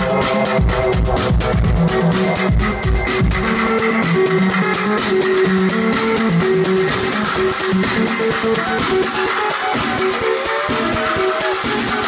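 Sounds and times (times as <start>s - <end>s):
plucked synthesizer melody: 0.0s - 12.0s
kick drum: 0.6s - 3.7s.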